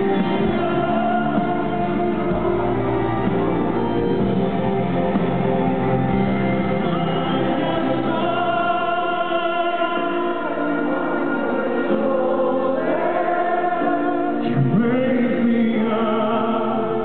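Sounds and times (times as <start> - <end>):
band and strings playing ballad: 0.0 - 17.0
voices singing together: 0.0 - 17.0.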